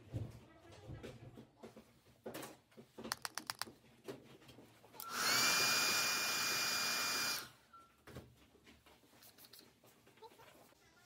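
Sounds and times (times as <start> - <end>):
electric motor whirring: 5.1 - 7.5.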